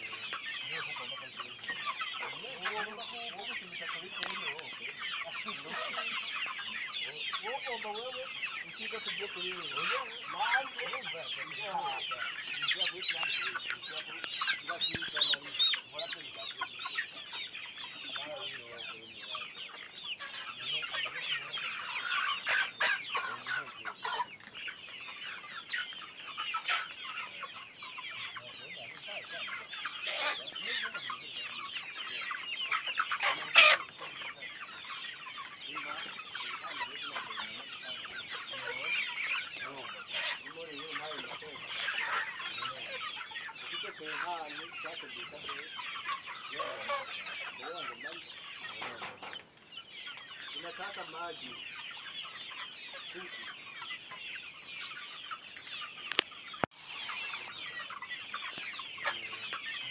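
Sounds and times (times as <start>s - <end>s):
chickens clucking: 0.0s - 59.9s.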